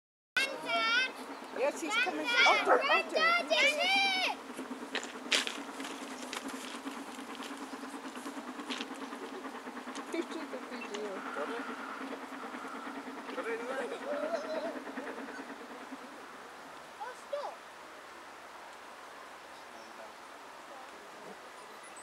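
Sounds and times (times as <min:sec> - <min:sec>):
steady low hum: 0:00.4 - 0:17.0
distant people talking: 0:00.4 - 0:18.6, 0:19.4 - 0:22.0.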